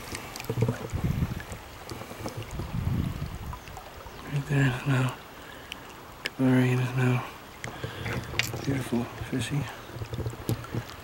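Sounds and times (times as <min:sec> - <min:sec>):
water splashing and sloshing: 0:00.0 - 0:11.0
low rumbles on microphone: 0:00.5 - 0:01.8, 0:02.4 - 0:03.7.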